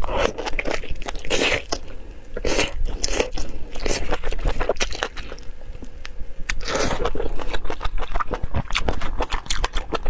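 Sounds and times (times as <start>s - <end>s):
wet bites and chewing: 0.1s - 1.8s, 2.4s - 10.0s.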